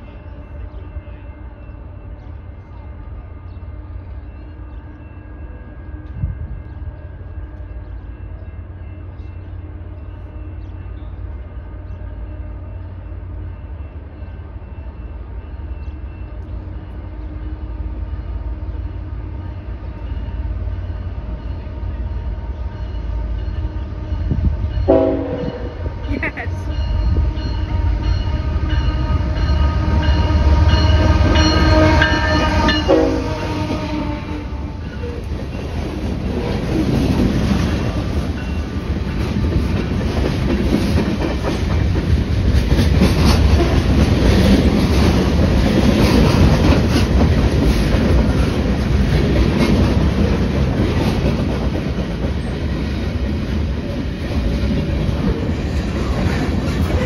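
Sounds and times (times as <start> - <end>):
train rumble: 0.0 - 57.0
train horn: 20.8 - 35.3
wheels clacking on rail joints: 34.8 - 57.0.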